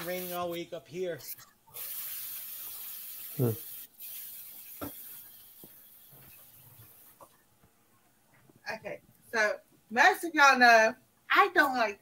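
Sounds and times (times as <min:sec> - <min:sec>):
steady hiss: 0:00.0 - 0:07.4.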